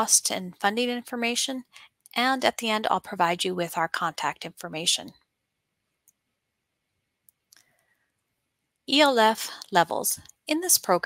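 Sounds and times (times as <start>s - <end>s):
faint mouse clicks: 7.2s - 7.9s.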